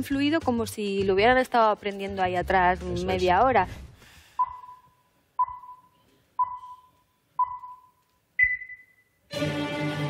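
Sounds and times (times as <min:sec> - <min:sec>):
electronic countdown beeps: 0:04.4 - 0:09.2.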